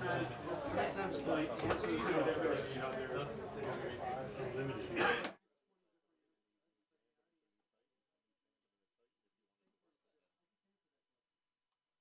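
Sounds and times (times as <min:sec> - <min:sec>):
murmur of people talking: 0:00.0 - 0:05.4.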